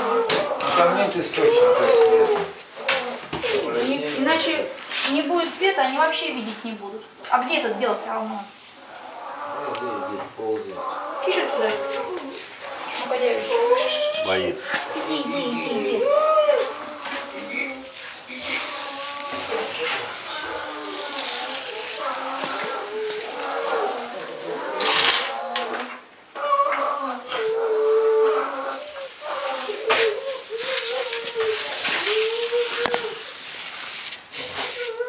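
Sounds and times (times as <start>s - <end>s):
bear cub crying: 0.0s - 3.7s, 9.2s - 25.7s, 26.4s - 33.3s.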